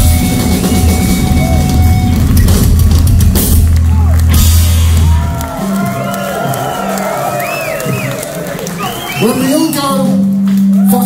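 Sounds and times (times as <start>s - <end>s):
crowd cheering and whistling: 0.0s - 11.0s
punk rock band playing: 0.0s - 11.0s.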